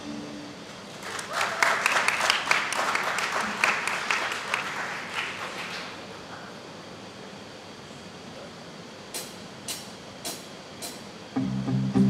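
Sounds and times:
band ringing notes: 0:00.0 - 0:00.7
audience applause: 0:00.9 - 0:06.1.

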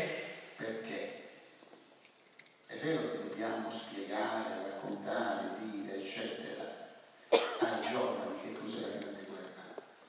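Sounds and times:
man speaking: 0:00.0 - 0:01.3, 0:02.7 - 0:09.8
loud cough: 0:07.3 - 0:08.1.

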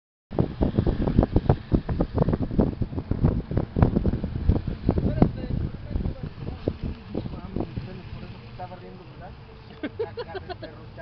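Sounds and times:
wind buffeting microphone: 0:00.3 - 0:10.0.

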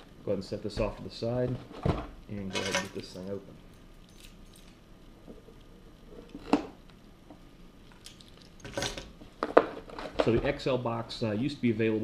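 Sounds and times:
keys clinking: 0:02.5 - 0:04.8.

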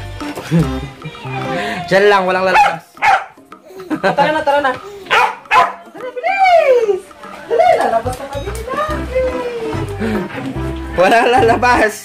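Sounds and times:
dog barking: 0:02.5 - 0:03.4, 0:05.1 - 0:05.8
dog yowling: 0:02.5 - 0:03.4, 0:05.1 - 0:05.9.

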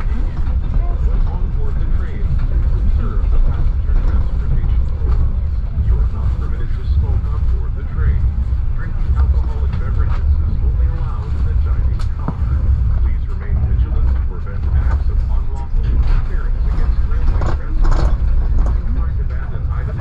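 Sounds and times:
train wheels rumbling on track: 0:00.0 - 0:20.0.

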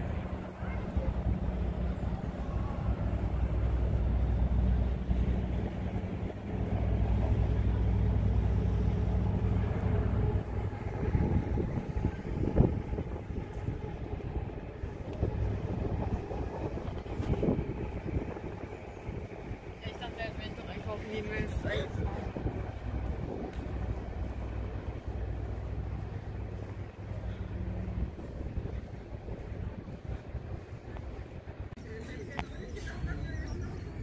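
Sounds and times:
boat engine rumble: 0:00.0 - 0:34.0
outdoor street sound: 0:00.0 - 0:34.0.

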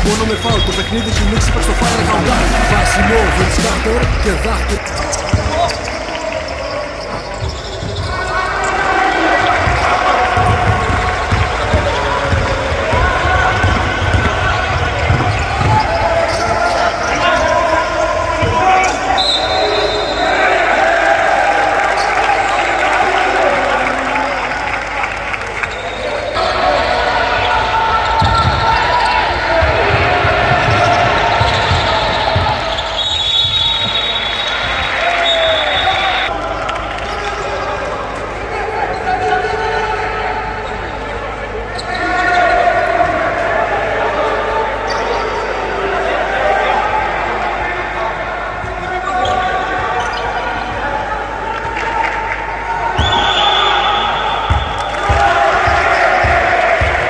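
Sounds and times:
referee's whistle: 0:00.0 - 0:02.1, 0:14.8 - 0:20.5, 0:30.8 - 0:36.3, 0:53.0 - 0:55.2
players calling out: 0:00.0 - 0:57.0
basketball bouncing on wooden floor: 0:09.6 - 0:16.0, 0:54.5 - 0:57.0.

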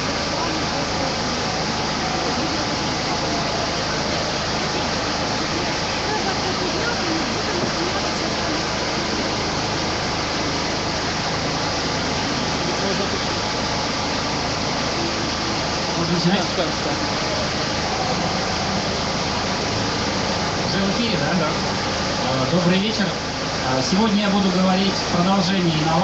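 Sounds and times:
steady loud noise: 0:00.0 - 0:26.0
voices murmuring: 0:00.0 - 0:26.0.

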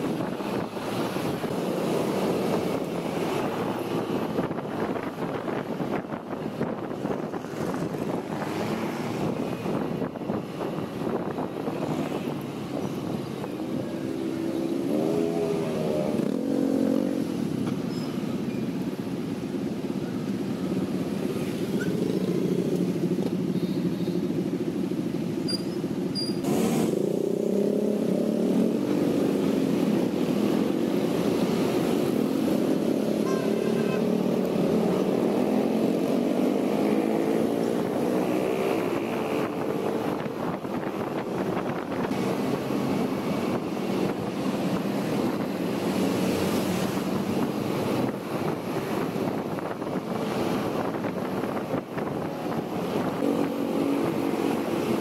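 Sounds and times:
road and wind noise: 0:00.0 - 0:55.0.

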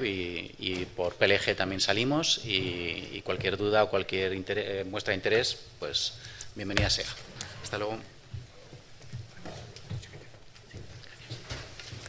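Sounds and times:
rustling: 0:06.9 - 0:12.0.

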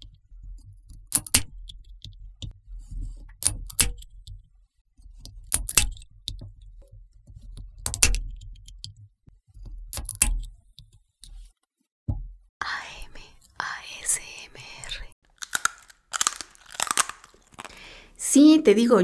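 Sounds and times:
crackling and clicking: 0:15.3 - 0:17.8
sharp crack: 0:15.4 - 0:17.8.

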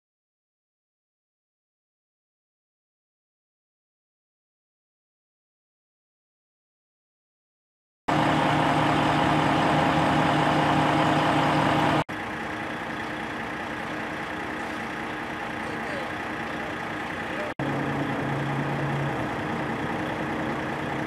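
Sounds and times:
engine idling hum: 0:08.1 - 0:21.0
low steady rumble: 0:08.1 - 0:21.0.

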